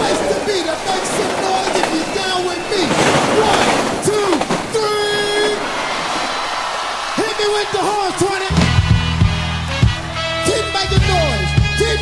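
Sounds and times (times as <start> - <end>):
horn blast: 7.7 - 12.0.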